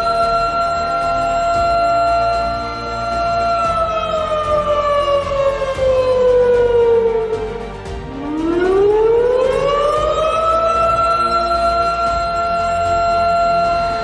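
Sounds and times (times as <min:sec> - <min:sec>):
wailing siren: 0:00.0 - 0:14.0.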